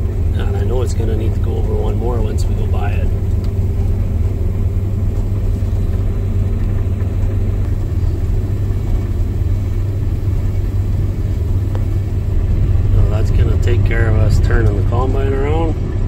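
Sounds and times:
combine harvester engine drone: 0.0 - 16.0.

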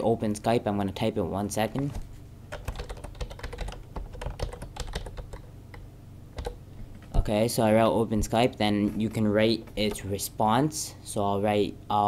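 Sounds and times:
keyboard typing: 2.5 - 7.1.

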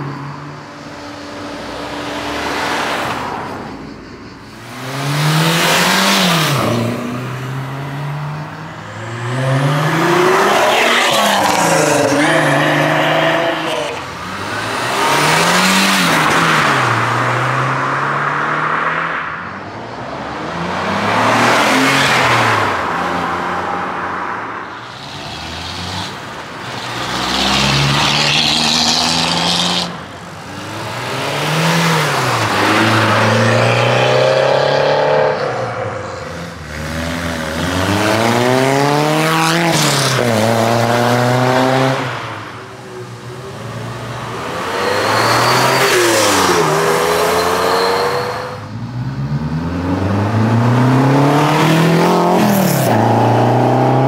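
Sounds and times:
cars accelerating hard: 4.6 - 54.0.

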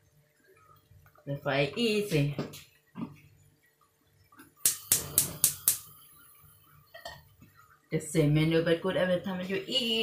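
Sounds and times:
gas hob igniter clicking: 4.6 - 5.9.

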